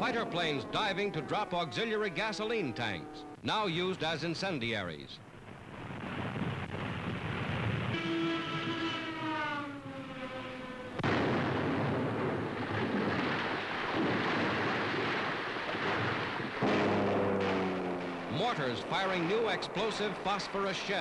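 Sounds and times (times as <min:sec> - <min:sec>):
loud explosion: 0:11.0 - 0:21.0
fighter plane diving past: 0:16.6 - 0:20.0.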